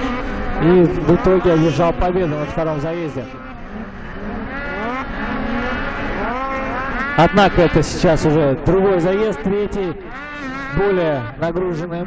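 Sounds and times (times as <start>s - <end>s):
low engine drone: 0.0s - 12.0s
snowmobile engines revving: 0.0s - 12.0s.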